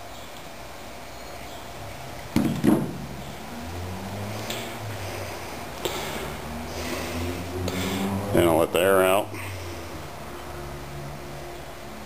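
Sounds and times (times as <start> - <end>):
sharp knocks from handling: 2.4 - 3.0.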